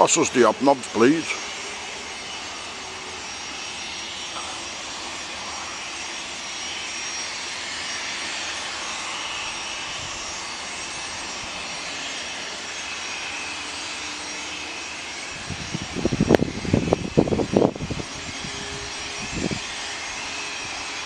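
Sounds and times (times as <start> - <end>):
jet taxiing: 0.0 - 21.0.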